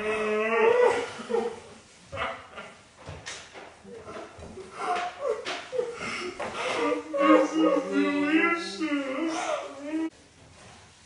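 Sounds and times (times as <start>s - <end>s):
people making vocal sounds: 3.8s - 10.1s.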